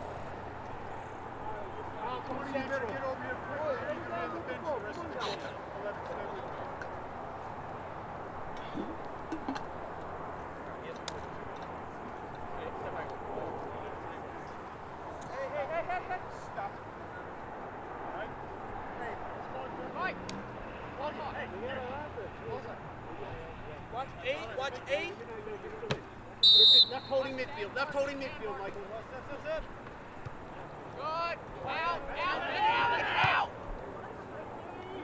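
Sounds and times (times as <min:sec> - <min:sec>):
distant shouts of players: 0:25.9 - 0:28.2, 0:31.0 - 0:35.0.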